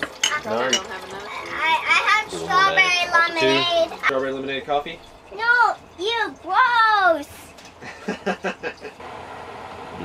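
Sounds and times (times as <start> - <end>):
gas stove humming and hissing: 0.0 - 10.0
child talking: 1.3 - 4.1, 5.3 - 7.5.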